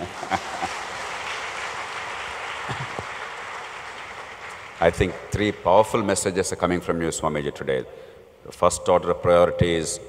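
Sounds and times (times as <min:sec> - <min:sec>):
audience applauding: 0:00.0 - 0:05.5.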